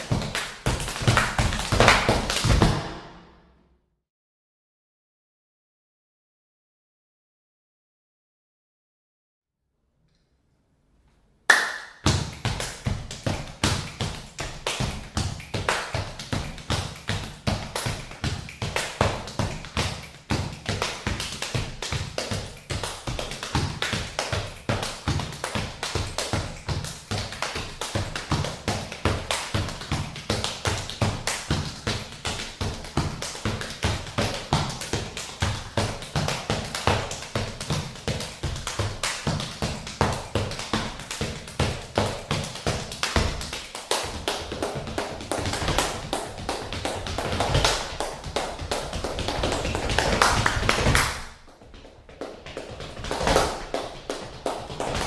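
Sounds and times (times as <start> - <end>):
foot stomps on wooden floor: 0.1 - 3.3.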